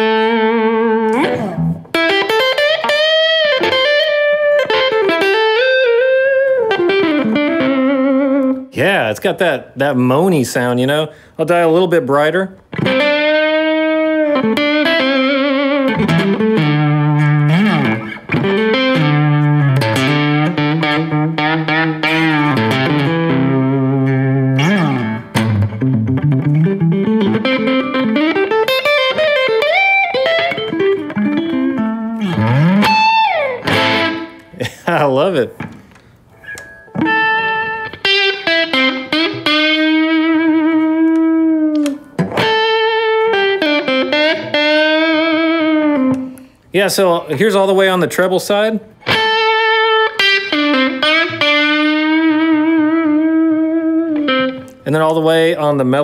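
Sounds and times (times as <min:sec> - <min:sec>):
electric guitar lead with bends: 0:00.0 - 0:08.7, 0:12.7 - 0:34.8, 0:35.6 - 0:46.6, 0:48.9 - 0:54.8.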